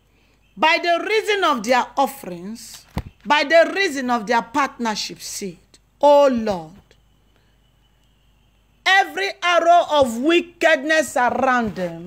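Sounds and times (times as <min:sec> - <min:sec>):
faint steady high tone: 0:00.0 - 0:12.0
woman praying: 0:00.6 - 0:07.0, 0:08.8 - 0:12.0.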